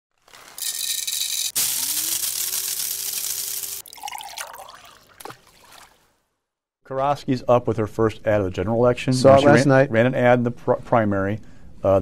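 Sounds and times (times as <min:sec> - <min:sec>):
coffee pouring into a mug: 0:01.5 - 0:06.0
liquid splashes: 0:02.2 - 0:06.2.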